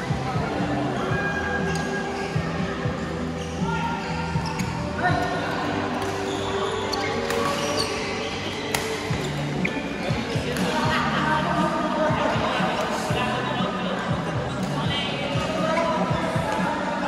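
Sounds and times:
rackets hitting shuttlecock: 6.0 - 6.2, 7.2 - 7.8, 8.6 - 9.2.

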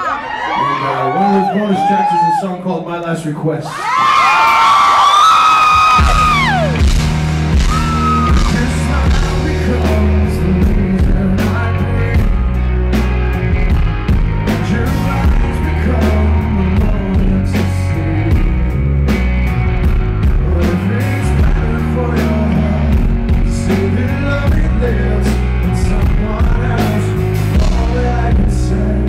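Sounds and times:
crowd whooping and screaming: 0.0 - 2.7, 3.6 - 9.1, 14.8 - 17.3
live rock band: 3.8 - 29.0
steady drumbeat: 5.7 - 29.0.

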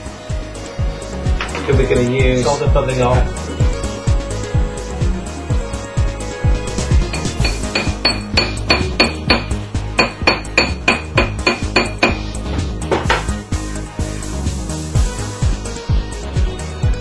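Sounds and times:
background music: 0.0 - 17.0
hammer tapping metal ring: 7.1 - 12.3.

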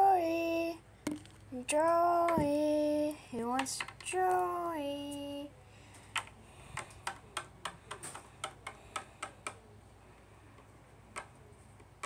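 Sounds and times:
plastic toy tapping on wooden desk: 1.1 - 1.4, 6.2 - 9.6.

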